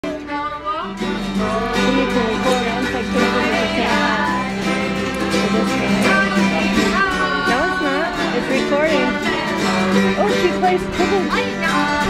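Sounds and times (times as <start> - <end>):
guitars playing country music: 0.0 - 12.0
person singing: 0.0 - 12.0.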